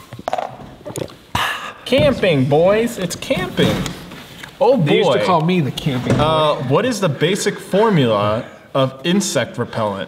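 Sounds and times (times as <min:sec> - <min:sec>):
voices: 0:01.4 - 0:10.0.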